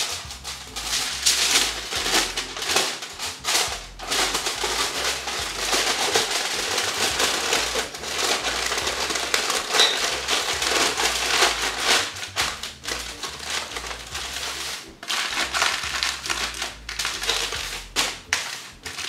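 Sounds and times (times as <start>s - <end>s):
aluminum foil crinkling: 0.0s - 19.0s.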